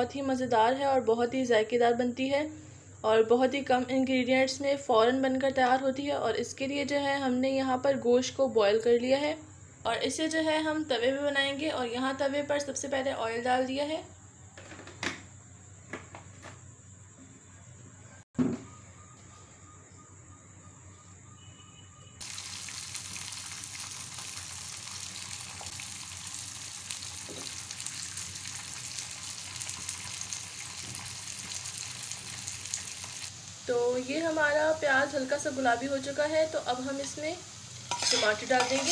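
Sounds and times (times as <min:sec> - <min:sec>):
onions sizzling in hot oil: 0:22.2 - 0:38.9.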